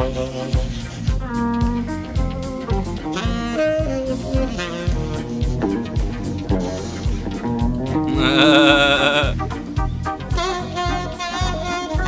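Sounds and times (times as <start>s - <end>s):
jazz-funk band playing: 1.2s - 12.0s.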